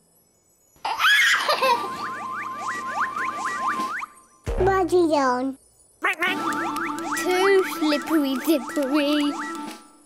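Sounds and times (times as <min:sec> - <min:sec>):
baby laughing: 0:00.8 - 0:02.0.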